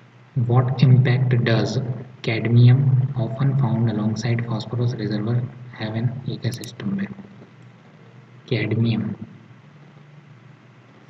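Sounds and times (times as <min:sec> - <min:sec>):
faint background hum with hiss: 0:00.0 - 0:11.0
person speaking: 0:00.4 - 0:07.2.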